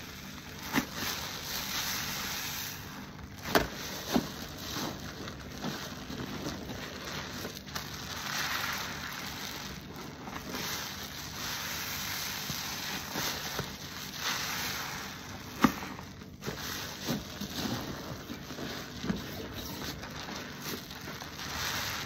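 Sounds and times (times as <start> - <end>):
wet sponge squishing foam: 0.0 - 22.0.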